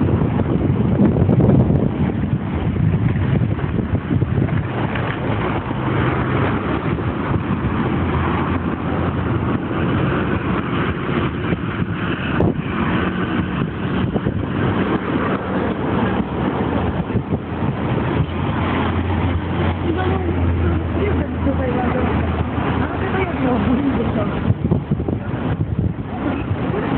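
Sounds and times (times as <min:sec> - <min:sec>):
low engine hum: 0:00.0 - 0:26.9
road traffic passing: 0:00.0 - 0:26.9.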